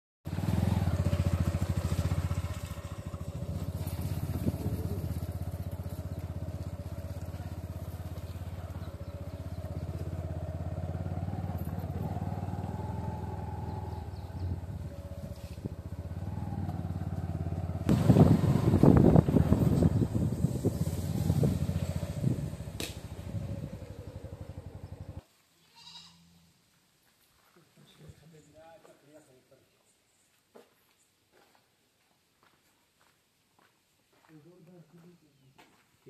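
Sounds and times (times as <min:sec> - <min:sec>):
motorcycle engine running: 0:00.3 - 0:25.2.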